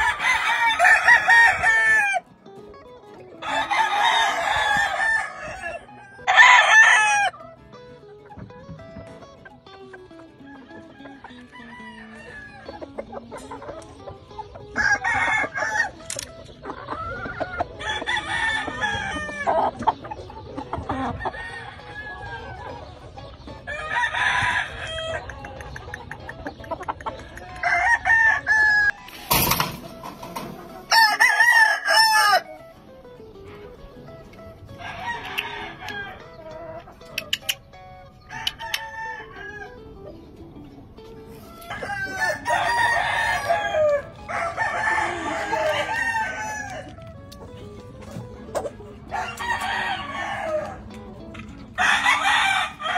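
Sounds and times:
roosters crowing: 0.0s - 2.3s, 3.3s - 7.6s, 10.2s - 13.0s, 14.6s - 16.2s, 16.9s - 19.9s, 20.8s - 22.7s, 23.5s - 25.4s, 27.2s - 32.9s, 34.0s - 36.6s, 37.7s - 40.0s, 41.3s - 47.2s, 48.5s - 52.9s
chickens clucking: 0.0s - 52.9s.

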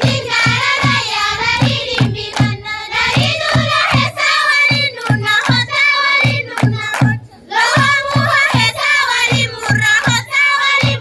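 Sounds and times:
group singing in unison: 0.0s - 11.0s
rhythmic clapping: 0.0s - 11.0s.

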